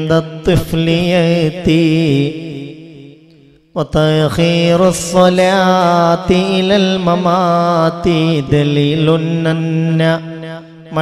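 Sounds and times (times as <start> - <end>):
man chanting verse melodically: 0.0 - 11.0.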